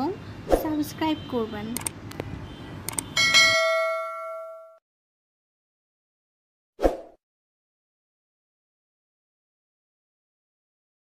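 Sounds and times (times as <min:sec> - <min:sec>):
click: 0:01.8 - 0:02.3, 0:02.9 - 0:03.1
notification ding: 0:03.2 - 0:04.8.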